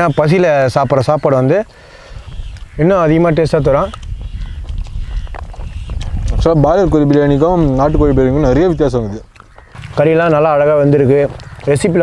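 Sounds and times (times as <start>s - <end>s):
chewing: 2.2s - 8.0s, 9.0s - 11.9s.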